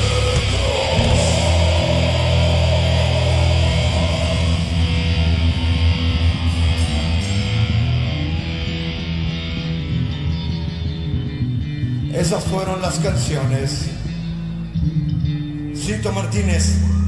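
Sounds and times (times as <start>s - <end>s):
live rock band playing: 0.0s - 16.1s
electric guitar: 0.0s - 17.0s.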